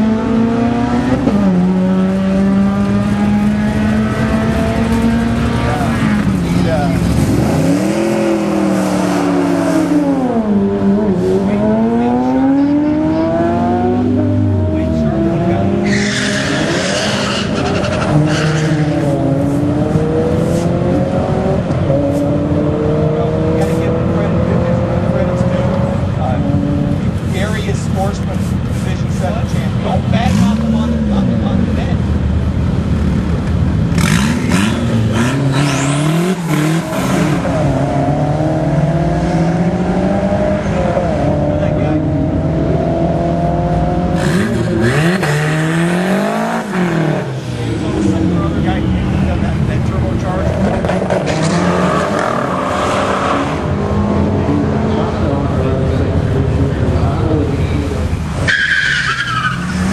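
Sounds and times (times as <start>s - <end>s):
drag racing cars revving: 0.0s - 59.9s.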